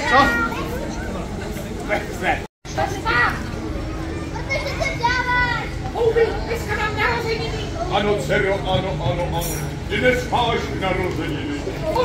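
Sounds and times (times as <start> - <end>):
children calling out: 3.0 - 7.8.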